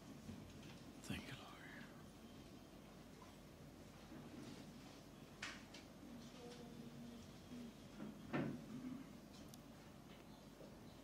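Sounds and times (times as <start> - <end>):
faint whispering: 1.0 - 2.1.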